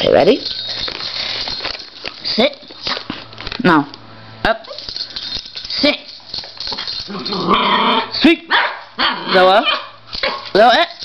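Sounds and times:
dog whining growl: 7.1s - 8.2s.

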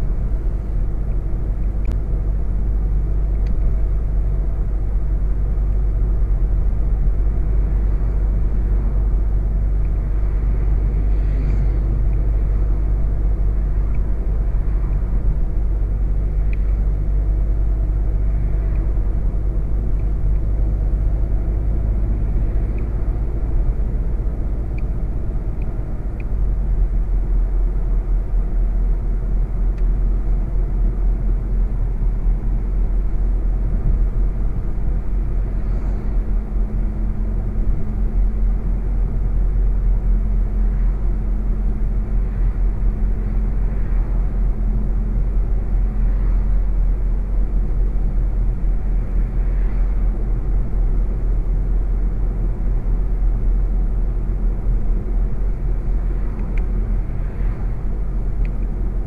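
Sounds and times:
car engine drone in cabin: 0.0s - 59.0s
tyre and road noise: 0.0s - 59.0s.

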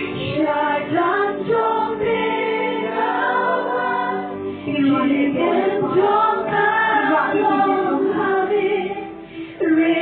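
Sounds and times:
women singing worship song: 0.0s - 10.0s.

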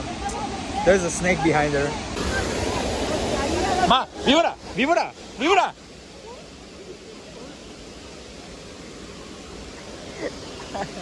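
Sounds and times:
waterfall rushing: 0.0s - 11.0s.

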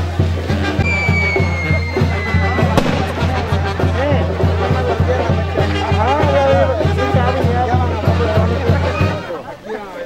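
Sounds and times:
brass band playing: 0.0s - 9.4s
sharp bang: 2.8s - 3.9s.

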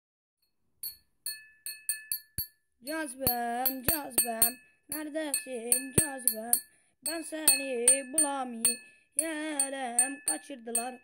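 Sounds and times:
metal teaspoon tapping a plate: 0.8s - 11.0s.

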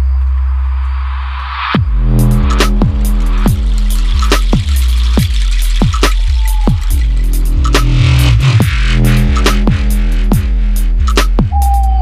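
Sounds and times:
sub-bass: 0.0s - 12.0s
deep kick drums: 1.8s - 11.7s.

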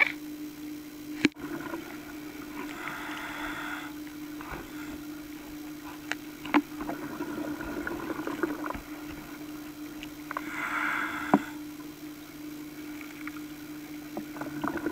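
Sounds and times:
low underwater hum: 0.0s - 14.9s.

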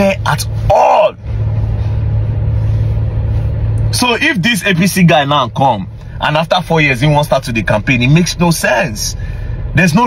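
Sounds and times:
car interior drone: 0.0s - 10.0s.

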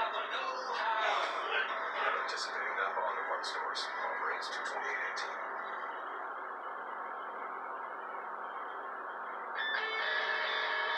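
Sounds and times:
faint music: 0.0s - 10.9s
hissy broadcast noise: 0.0s - 10.9s.

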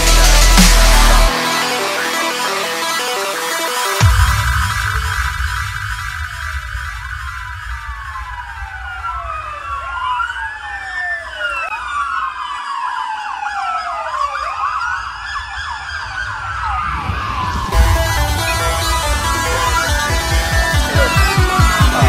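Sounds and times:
electronic dance track bass pulse: 0.0s - 8.6s, 17.0s - 22.0s
siren wails: 0.0s - 22.0s
loud hit: 4.0s - 10.5s, 15.9s - 22.0s.

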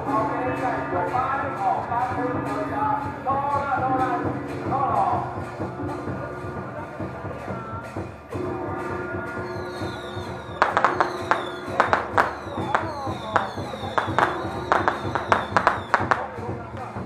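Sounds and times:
held instrumental tone: 0.0s - 17.0s.

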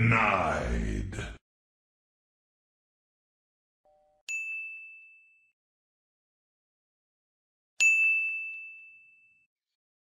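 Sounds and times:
high bell-like ding: 3.9s - 5.6s, 7.8s - 9.5s.

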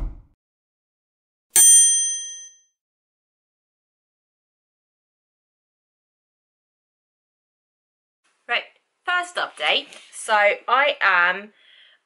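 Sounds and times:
bell-like ding: 1.6s - 2.7s.

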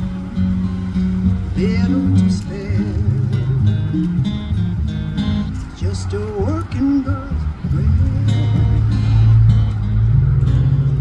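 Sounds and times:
strummed acoustic guitar: 0.0s - 11.0s
upright bass notes: 0.0s - 11.0s.

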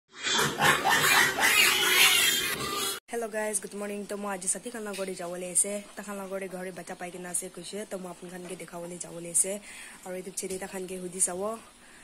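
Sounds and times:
piglets squealing and grunting: 0.1s - 3.0s.

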